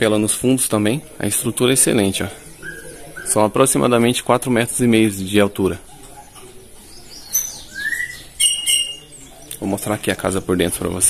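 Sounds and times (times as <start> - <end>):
birds chirping: 0.0 - 11.0
bird rising whistle: 7.6 - 9.2.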